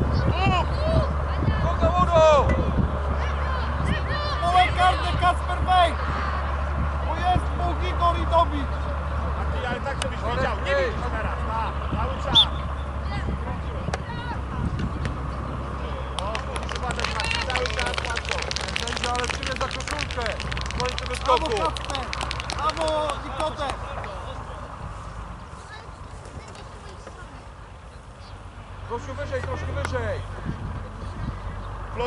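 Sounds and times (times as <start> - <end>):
children and adults shouting: 3.1 - 6.6
dense patter of sharp clicks: 16.2 - 23.8.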